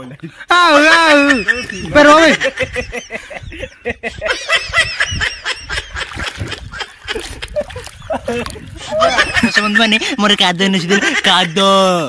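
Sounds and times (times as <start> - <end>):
person cackling laugh: 1.1 - 9.9.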